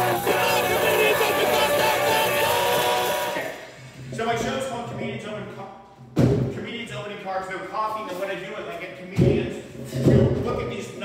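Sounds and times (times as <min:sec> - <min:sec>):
electric guitar: 0:00.0 - 0:03.6
drums: 0:00.0 - 0:04.2, 0:06.0 - 0:06.7, 0:09.1 - 0:11.0.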